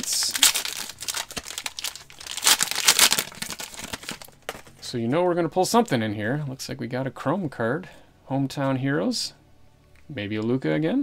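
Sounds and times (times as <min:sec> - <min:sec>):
wrapper tearing open: 0:00.0 - 0:04.8
plastic wrapper crinkling: 0:00.0 - 0:04.9.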